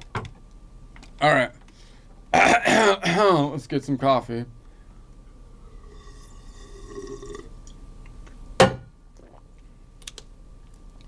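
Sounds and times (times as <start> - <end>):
person slurping coffee: 5.7 - 7.5.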